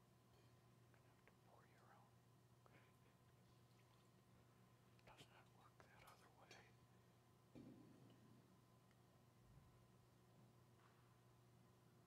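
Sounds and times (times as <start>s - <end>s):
steady low hum: 0.0s - 12.0s
faint whispering: 0.9s - 3.3s, 5.0s - 6.8s.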